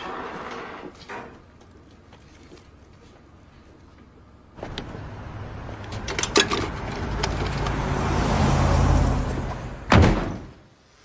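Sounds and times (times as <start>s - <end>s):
vehicle driving past: 6.8s - 9.9s.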